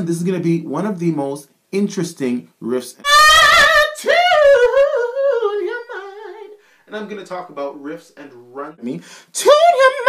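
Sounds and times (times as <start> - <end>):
man singing vocal riff: 3.0 - 6.7, 8.2 - 10.0.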